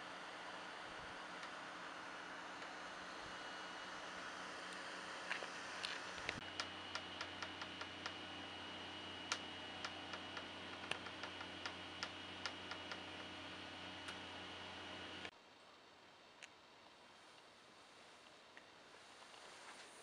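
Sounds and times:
steady hiss: 0:00.0 - 0:20.0.

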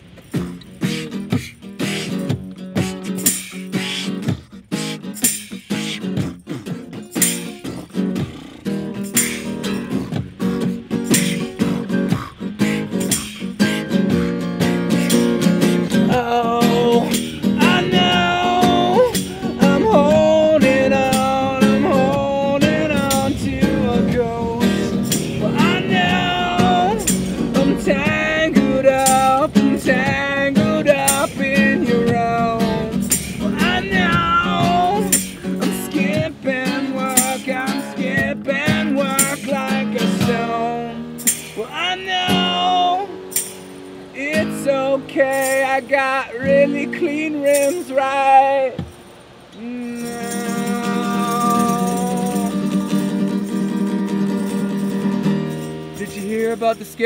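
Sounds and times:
tambourine shaken and struck: 0:00.0 - 0:46.8, 0:47.5 - 0:48.0, 0:48.8 - 0:57.0
acoustic guitar strumming: 0:00.0 - 0:57.0
man singing: 0:15.7 - 0:43.2, 0:44.2 - 0:48.9, 0:49.5 - 0:57.0.

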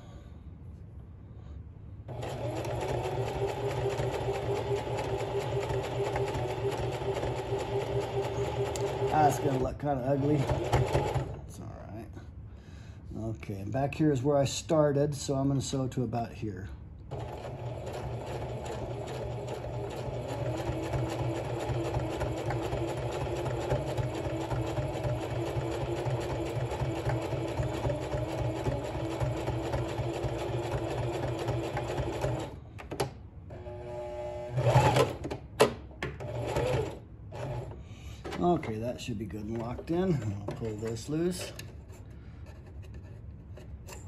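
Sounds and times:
sewing machine stitching: 0:02.1 - 0:11.4, 0:17.1 - 0:32.6, 0:33.6 - 0:35.4, 0:36.2 - 0:37.8.

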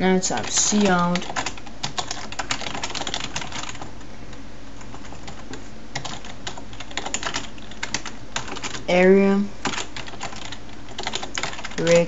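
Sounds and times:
computer keyboard typing: 0:00.3 - 0:04.0, 0:04.8 - 0:08.9, 0:09.6 - 0:12.0.

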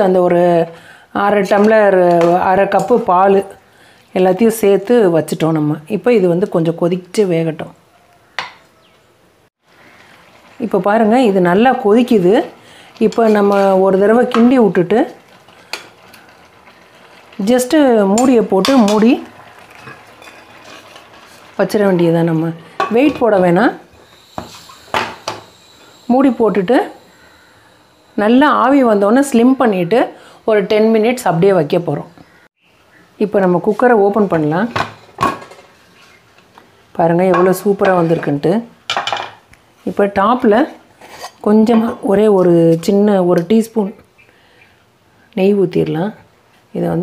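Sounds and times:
pot simmering with steady hiss: 0:09.5 - 0:47.0
metal utensil clinking cookware: 0:18.0 - 0:21.0.

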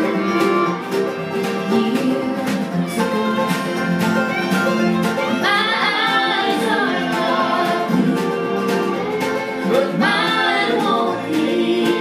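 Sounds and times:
acoustic guitars: 0:00.0 - 0:12.0
banjo: 0:00.0 - 0:12.0
woman singing lead: 0:01.4 - 0:04.0, 0:05.2 - 0:12.0
harmony singing: 0:05.2 - 0:12.0.

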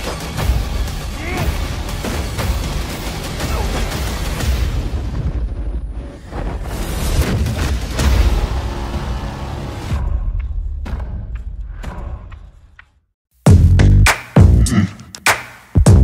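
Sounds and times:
cinematic trailer music: 0:00.0 - 0:16.0.

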